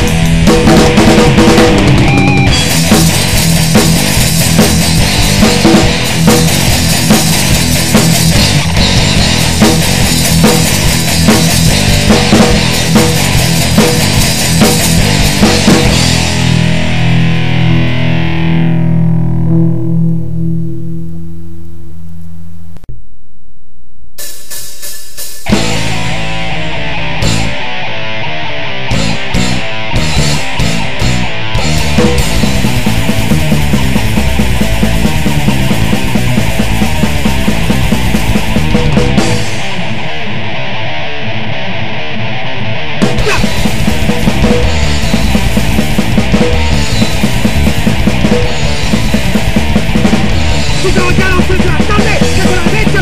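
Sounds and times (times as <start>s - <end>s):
thrash band playing: 0.0s - 21.3s, 24.2s - 53.0s
distorted electric guitar chord: 0.0s - 23.3s, 25.4s - 53.0s.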